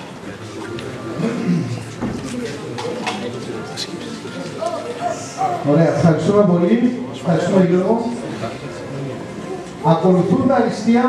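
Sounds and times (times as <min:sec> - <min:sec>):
murmur of voices in a hall: 0:00.0 - 0:11.0.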